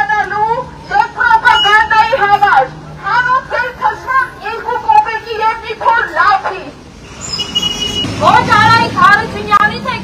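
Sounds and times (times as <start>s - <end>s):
woman shouting through megaphone: 0.0s - 6.8s, 8.1s - 10.0s
thin high squeal: 7.1s - 8.0s.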